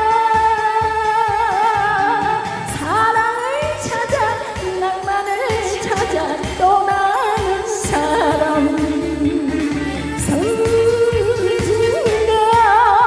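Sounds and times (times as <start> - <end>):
amplified accompaniment with beat: 0.0 - 13.0
woman singing into a microphone: 0.0 - 13.0.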